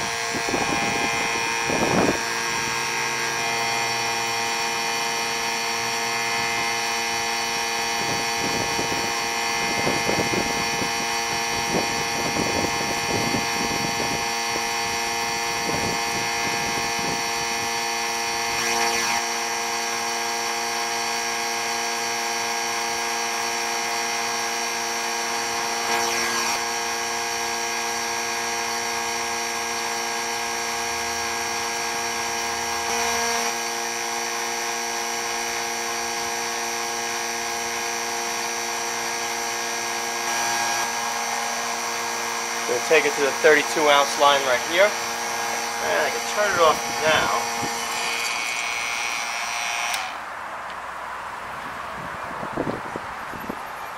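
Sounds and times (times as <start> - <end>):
vacuum pump motor hum and whine: 0.0 - 50.8.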